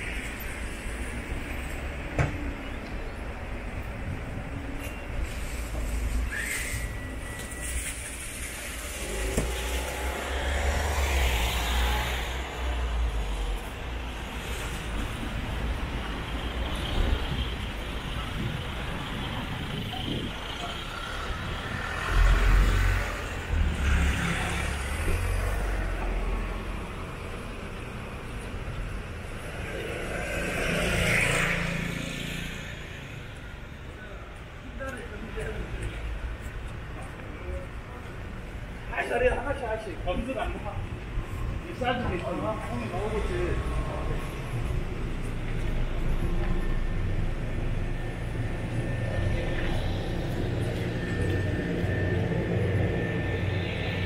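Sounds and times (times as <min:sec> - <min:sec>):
cars passing: 0:00.0 - 0:54.0
traffic rumble: 0:00.0 - 0:54.0.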